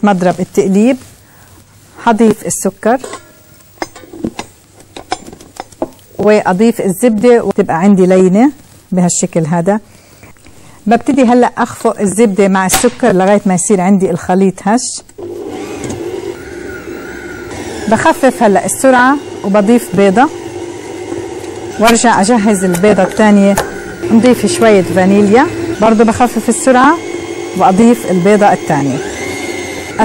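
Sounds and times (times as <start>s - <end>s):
stand mixer running: 15.2s - 21.9s, 22.5s - 30.0s.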